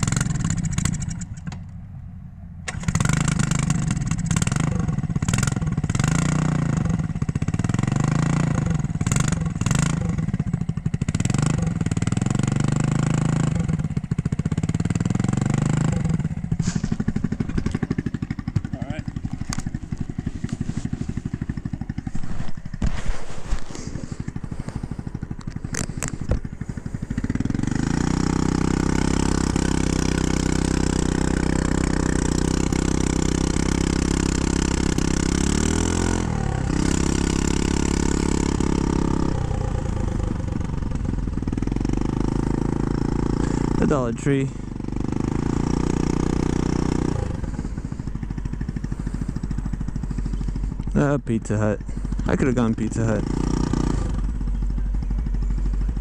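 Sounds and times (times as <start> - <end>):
scooter pulling away: 0.0 - 1.8, 2.6 - 56.0
scooter engine idling: 0.0 - 56.0.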